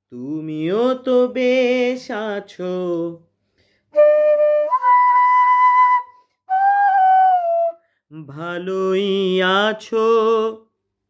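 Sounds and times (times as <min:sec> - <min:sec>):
man singing: 0:00.0 - 0:03.3, 0:07.3 - 0:10.8.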